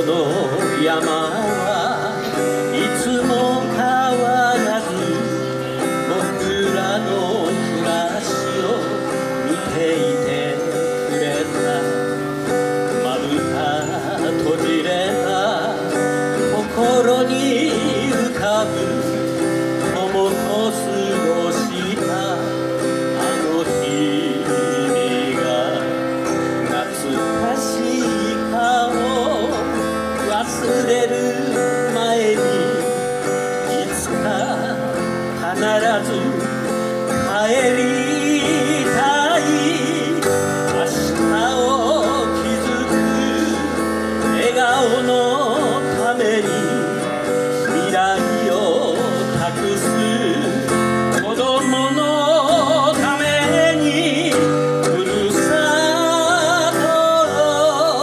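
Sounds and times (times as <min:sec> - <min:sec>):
acoustic guitar playing chords: 0:00.0 - 0:58.0.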